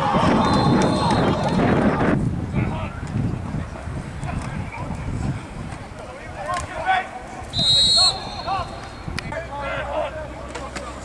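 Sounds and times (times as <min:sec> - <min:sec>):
people shouting: 0:00.0 - 0:02.9
referee's whistle blast: 0:00.3 - 0:01.8, 0:07.5 - 0:09.0.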